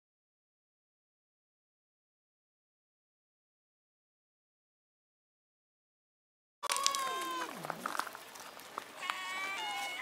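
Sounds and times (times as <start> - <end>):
cat meowing: 6.6 - 7.6, 9.0 - 10.0.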